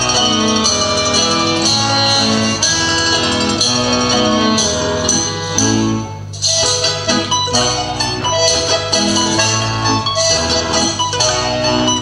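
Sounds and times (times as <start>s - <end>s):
folk dance music with plucked strings: 0.0s - 12.0s.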